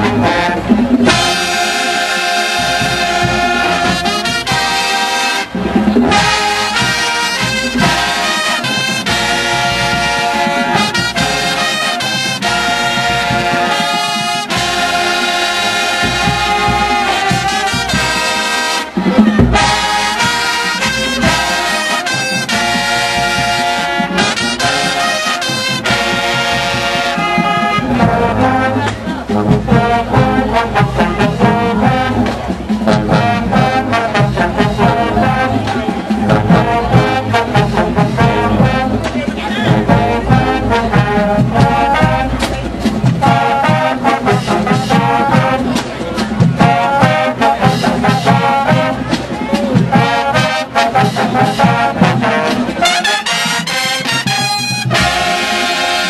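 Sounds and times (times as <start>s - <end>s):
brass chords: 0.0s - 56.0s
drumline beat: 0.0s - 56.0s.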